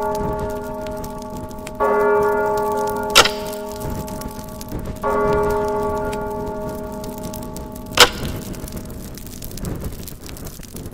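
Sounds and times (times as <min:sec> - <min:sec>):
sharp snap: 0:03.2 - 0:03.8, 0:08.0 - 0:08.6.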